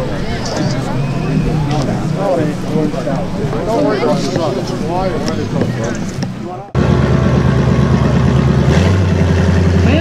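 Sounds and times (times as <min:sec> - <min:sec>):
deeper engine tone: 0:00.0 - 0:10.0
car engine running at low revs: 0:06.8 - 0:10.0.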